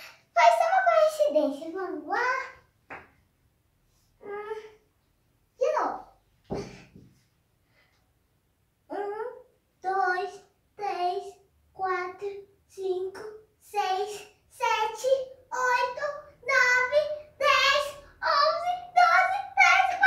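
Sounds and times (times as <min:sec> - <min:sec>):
girl counting aloud: 0:00.4 - 0:02.6, 0:05.6 - 0:06.2, 0:08.9 - 0:20.0.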